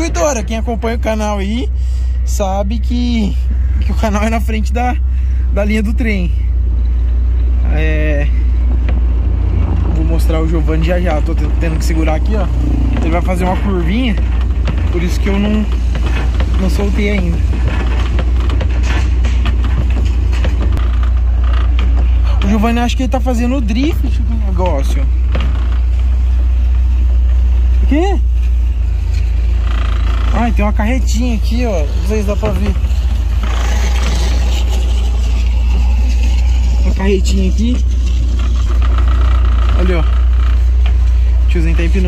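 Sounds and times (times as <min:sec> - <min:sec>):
road noise from moving pickup: 0:00.0 - 0:42.0
light knocks and rattles: 0:08.4 - 0:42.0.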